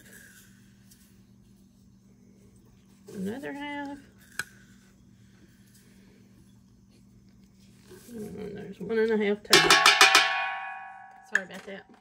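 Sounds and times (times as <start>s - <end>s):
faint low hum: 0.0s - 12.0s
sharp tap on metal pot: 9.6s - 11.5s.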